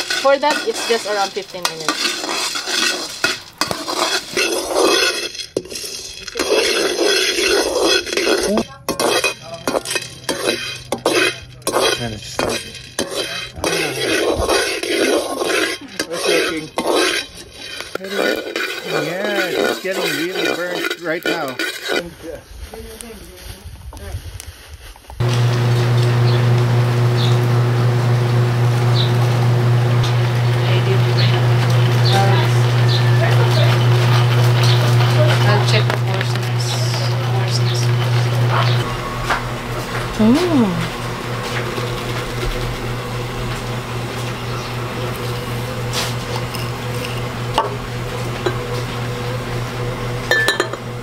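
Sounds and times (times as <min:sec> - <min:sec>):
metal spoon scraping beans in wok: 0:00.0 - 0:22.1, 0:30.0 - 0:40.1, 0:40.9 - 0:48.9
voices talking: 0:00.2 - 0:01.9, 0:25.3 - 0:50.2
loud low hum: 0:25.2 - 0:51.0.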